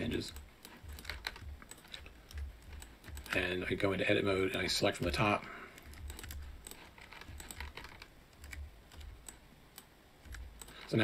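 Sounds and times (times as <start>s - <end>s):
keyboard keys clicking: 0.1s - 3.6s, 4.5s - 10.9s.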